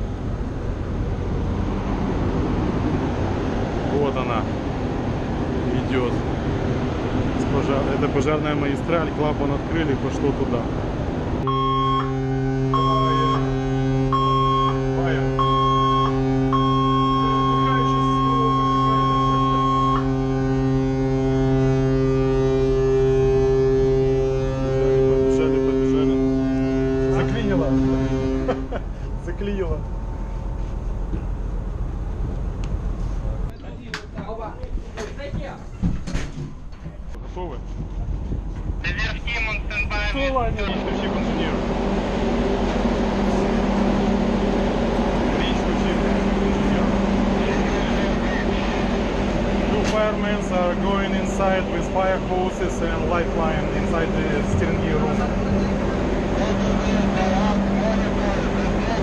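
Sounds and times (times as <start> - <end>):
ship's whistle low blast: 11.4 - 28.8
high beeping tone: 11.5 - 13.5, 14.1 - 14.8, 15.4 - 20.1
indistinct voices: 38.8 - 59.0.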